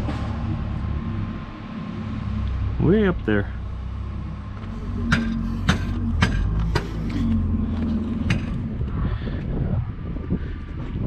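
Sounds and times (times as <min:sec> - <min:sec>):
diesel engines idling: 0:00.0 - 0:11.0
engine hum: 0:00.0 - 0:11.0
sharp metal clanks: 0:05.0 - 0:07.4.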